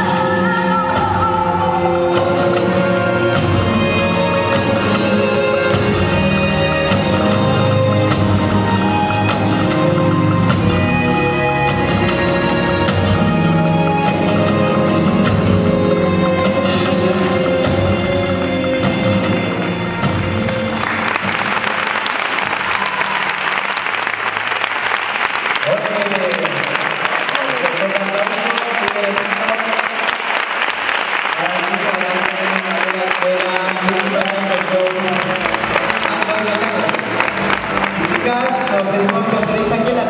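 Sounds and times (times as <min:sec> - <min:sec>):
music playing: 0:00.0 - 0:40.0
audience applauding: 0:01.7 - 0:40.0.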